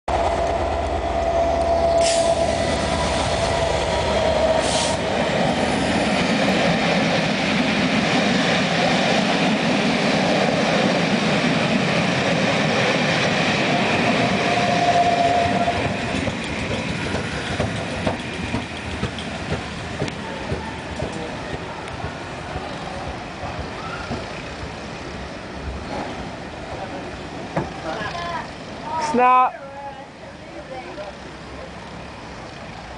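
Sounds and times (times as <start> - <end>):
locomotive engine: 0.1 - 28.8
train wheels clacking: 11.3 - 24.6.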